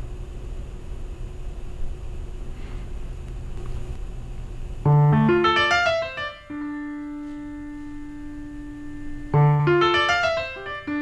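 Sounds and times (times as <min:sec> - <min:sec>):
grand piano note: 0:04.9 - 0:11.0.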